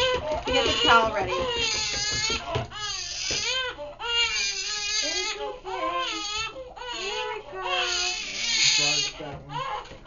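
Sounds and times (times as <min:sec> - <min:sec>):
newborn baby crying: 0:00.0 - 0:10.0.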